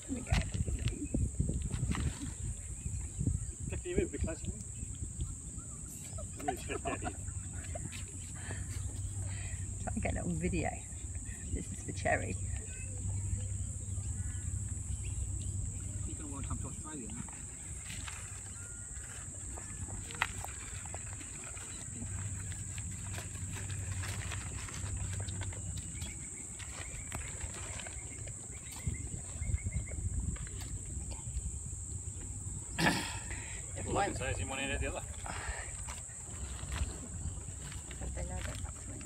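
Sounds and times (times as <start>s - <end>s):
kangaroo chewing and crunching: 12.5s - 32.6s, 35.0s - 39.0s.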